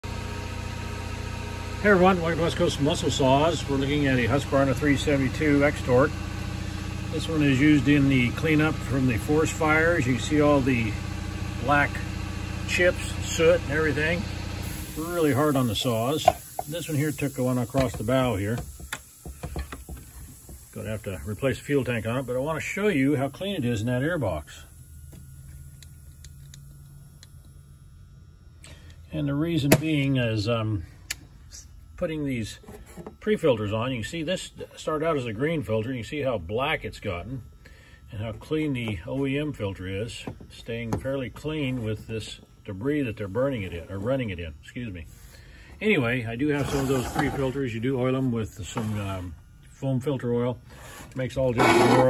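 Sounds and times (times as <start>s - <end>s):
low mechanical hum: 0.0s - 52.0s.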